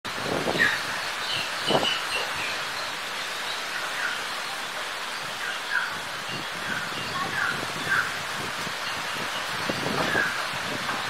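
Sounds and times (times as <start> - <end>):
stormy wind rushing through trees: 0.1 - 11.0.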